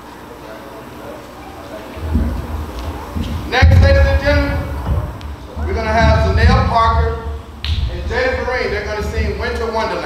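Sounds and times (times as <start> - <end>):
voices: 0.0 - 10.0.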